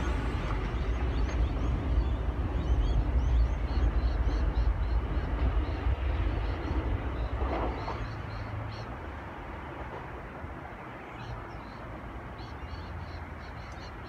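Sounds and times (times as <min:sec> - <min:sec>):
train wheels rumbling on rail: 0:00.0 - 0:11.8.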